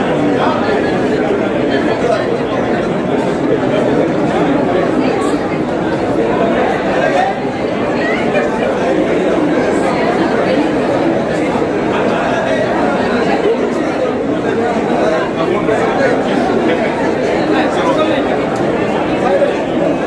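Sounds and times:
babble of overlapping voices: 0:00.0 - 0:20.0.

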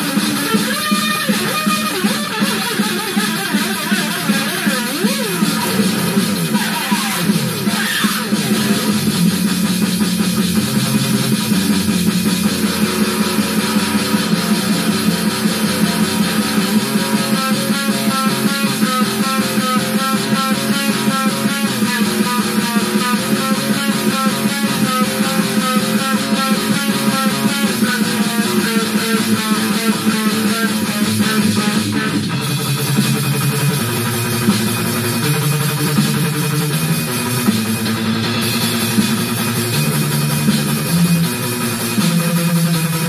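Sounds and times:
electric guitar metal riffs: 0:00.0 - 0:43.0
fast drum loop: 0:00.0 - 0:43.0.

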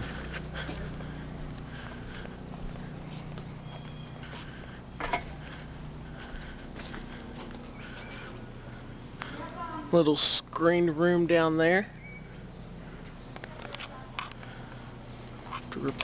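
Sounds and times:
footsteps on a deck: 0:00.0 - 0:09.9, 0:12.2 - 0:16.0
faint low hum: 0:00.0 - 0:16.0
bird chirps: 0:00.1 - 0:09.1, 0:11.9 - 0:13.3.

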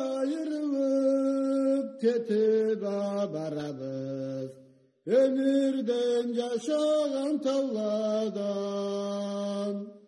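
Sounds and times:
person singing chant: 0:00.0 - 0:10.0.

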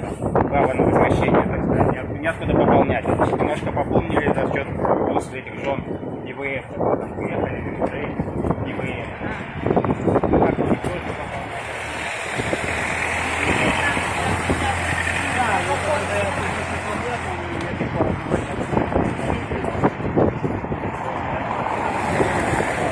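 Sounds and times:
people's voices: 0:00.0 - 0:22.9
car engine humming: 0:09.4 - 0:22.9
tyres hissing on wet street: 0:10.7 - 0:19.5, 0:21.4 - 0:22.9.

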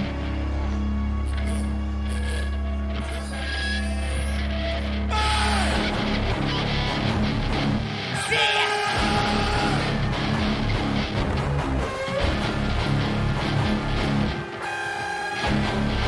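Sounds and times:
loud live rap music: 0:08.1 - 0:10.6.

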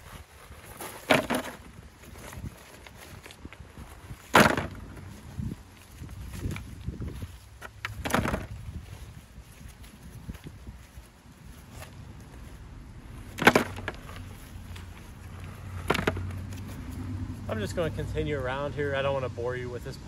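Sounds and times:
stones clacking together: 0:07.6 - 0:08.6, 0:13.2 - 0:16.7.

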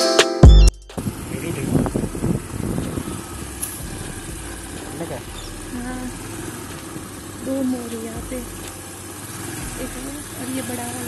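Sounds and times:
wind on microphone: 0:01.0 - 0:04.4
motor scooter engine rumble: 0:01.0 - 0:11.0.

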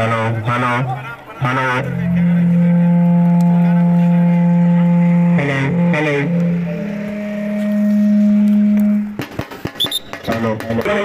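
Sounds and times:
man calling over loudspeaker: 0:00.0 - 0:06.7, 0:10.2 - 0:11.0.

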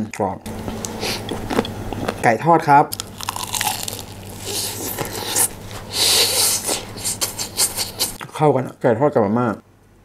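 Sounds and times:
crunching fried chicken: 0:02.9 - 0:06.2.

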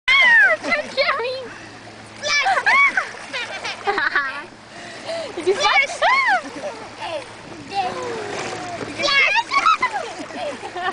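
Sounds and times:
water splashing: 0:00.1 - 0:10.9.

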